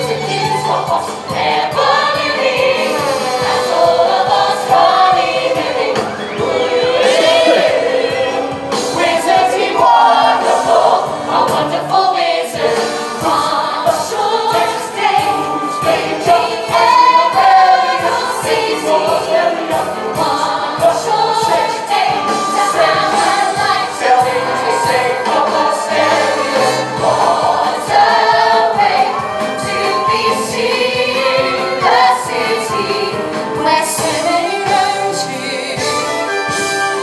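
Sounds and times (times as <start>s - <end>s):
chorus singing: 0.0s - 37.0s
orchestra playing: 2.1s - 37.0s.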